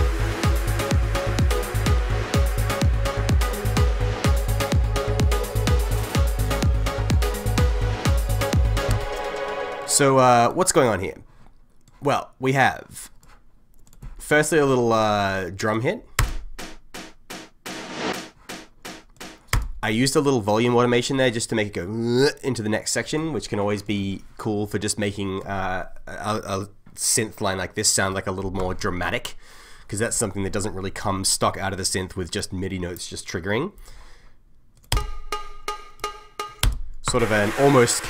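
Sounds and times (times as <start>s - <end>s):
electronic music: 0.0s - 10.4s, 16.6s - 19.5s, 35.0s - 38.0s
crisp percussion hits: 16.3s - 19.6s, 35.3s - 38.0s
cowbell-like percussion hits: 35.3s - 38.0s.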